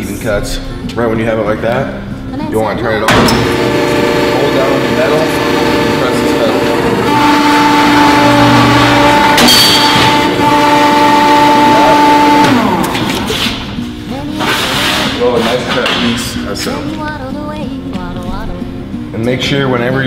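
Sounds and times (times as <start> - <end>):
ironworker motor and flywheel hum: 3.1 - 13.9.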